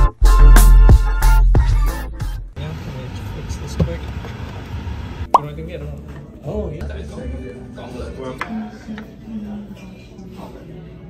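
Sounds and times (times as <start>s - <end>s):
background music: 0.0s - 2.6s.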